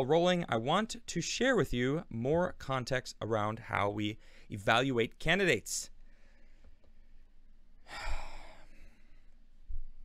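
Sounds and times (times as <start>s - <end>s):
man sighing: 7.9s - 9.1s.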